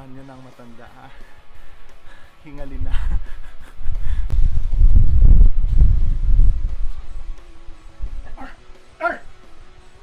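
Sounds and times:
man laughing: 0:02.7 - 0:04.3
low rumbling on microphone: 0:02.7 - 0:08.4.

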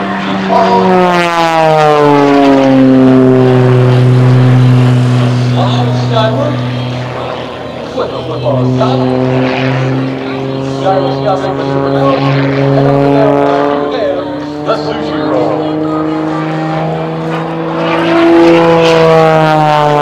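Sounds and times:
propeller plane engine: 0:00.0 - 0:20.0.

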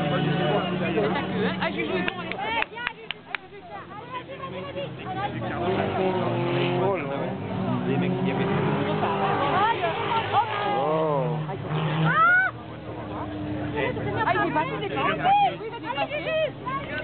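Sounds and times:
race car engines revving: 0:00.0 - 0:17.0.

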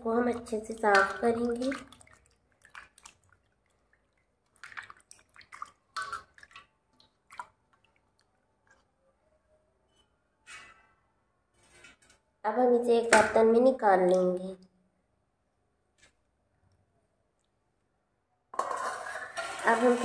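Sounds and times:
water splashing in steel vessel: 0:00.1 - 0:08.2.

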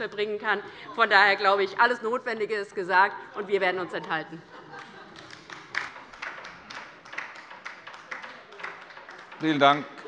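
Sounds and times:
sparse applause: 0:04.7 - 0:10.0.

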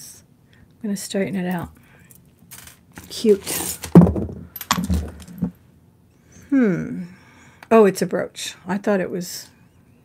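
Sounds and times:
metal jewelry clinking: 0:04.4 - 0:05.5.

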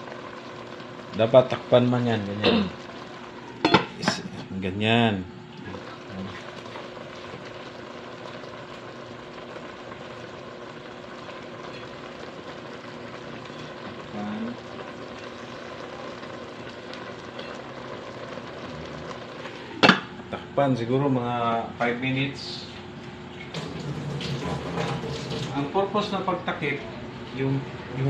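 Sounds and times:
eggplant simmering in a pot: 0:00.0 - 0:28.0
metal lid clanking on pot: 0:03.6 - 0:04.2.

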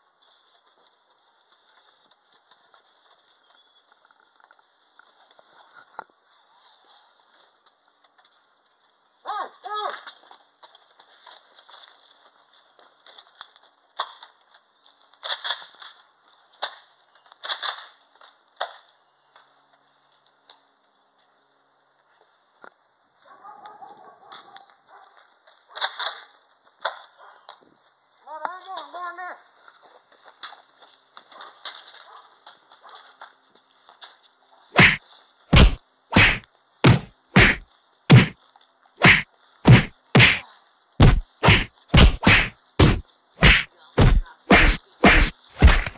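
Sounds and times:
foam-dart blasters popping: 0:34.8 - 0:38.4, 0:39.0 - 0:40.4, 0:41.0 - 0:45.9
punch sound effects: 0:34.8 - 0:38.4, 0:39.0 - 0:40.4, 0:41.0 - 0:45.9.

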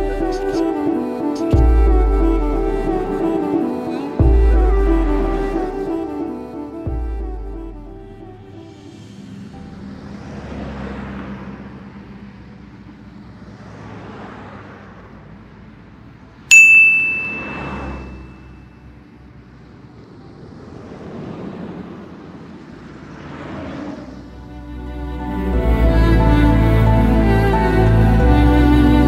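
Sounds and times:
metallic ding: 0:16.5 - 0:18.5.

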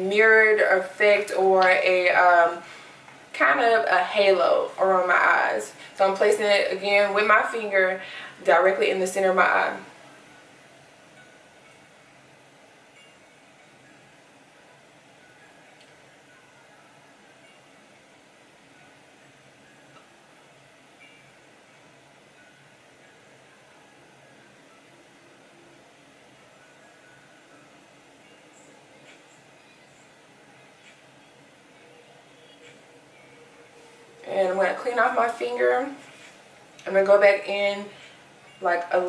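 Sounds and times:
room tone hiss: 0:00.0 - 0:39.0.

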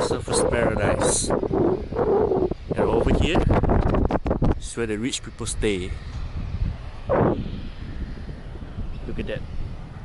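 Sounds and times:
rush of noise: 0:00.0 - 0:10.0
wind buffeting microphone: 0:00.0 - 0:10.0.

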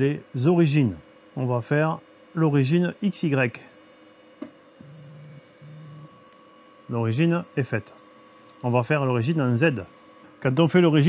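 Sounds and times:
stepper motors humming: 0:00.0 - 0:11.0.

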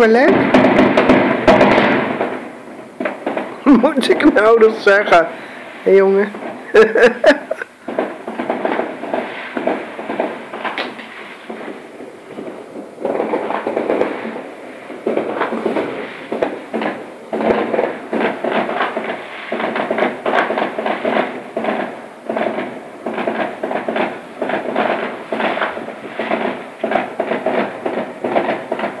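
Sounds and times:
fireworks crackling and banging: 0:00.0 - 0:29.0.

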